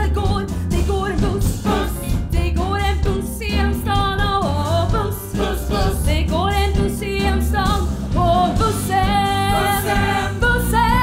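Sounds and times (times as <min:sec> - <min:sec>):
live band playing: 0:00.0 - 0:11.0
group of voices singing: 0:01.2 - 0:02.2, 0:05.0 - 0:06.4, 0:08.4 - 0:11.0.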